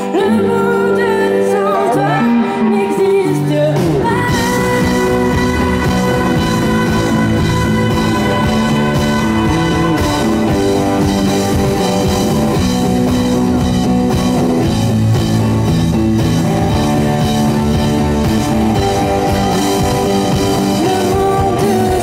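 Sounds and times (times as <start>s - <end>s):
electric guitar: 0.0s - 22.0s
pop-rock band playing: 0.0s - 22.0s
drum kit: 2.0s - 22.0s.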